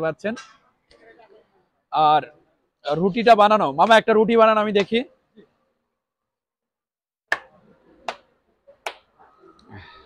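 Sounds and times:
dough slapped between palms: 8.1s - 9.1s.

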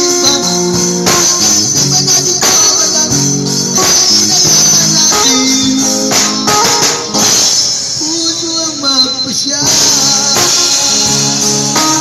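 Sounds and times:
drum kit with ringing cymbals: 0.0s - 12.0s
guitar: 0.0s - 12.0s
person singing: 8.0s - 12.0s.

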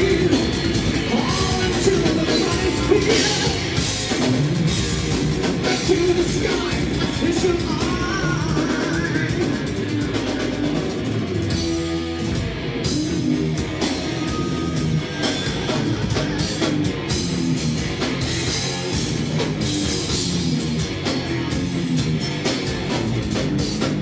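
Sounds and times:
metal band playing live: 0.0s - 24.0s.

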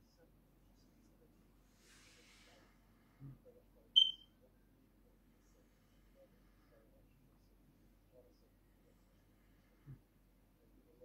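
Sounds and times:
high-pitched chirp: 4.0s - 4.2s.

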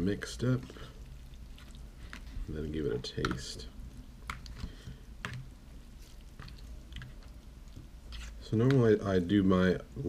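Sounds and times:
fork stirring wet noodles: 0.0s - 8.9s.

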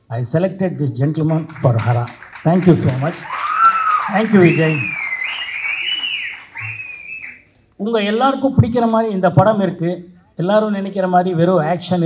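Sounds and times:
high gliding whistles: 3.6s - 7.4s.

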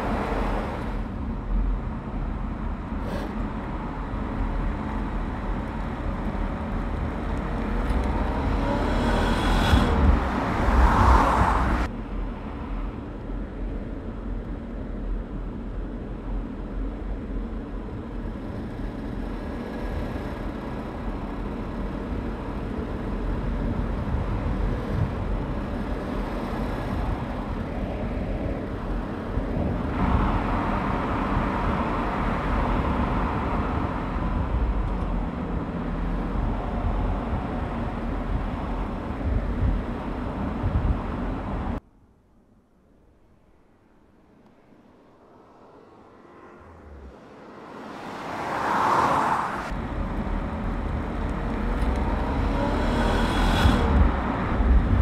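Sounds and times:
car engine and tyre rumble: 0.0s - 55.0s.

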